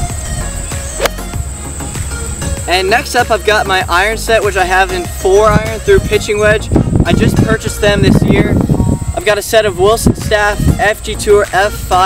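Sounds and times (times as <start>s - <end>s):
golf club striking ball: 0.9s - 1.4s.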